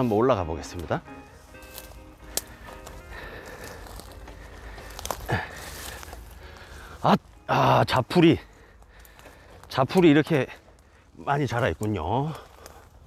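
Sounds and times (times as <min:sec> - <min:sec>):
background music: 0:00.0 - 0:10.6
footsteps: 0:00.0 - 0:13.0.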